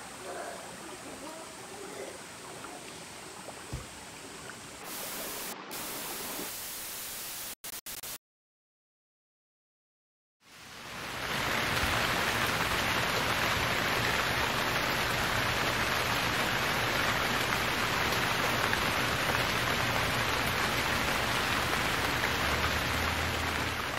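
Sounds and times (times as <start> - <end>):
steady rain falling: 0.0 - 7.6, 10.4 - 23.9.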